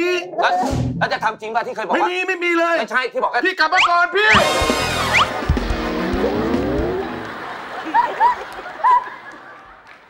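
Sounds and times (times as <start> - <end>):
falling whistle: 3.8 - 5.4
music: 4.3 - 7.6
slowly rising tone: 4.9 - 7.4.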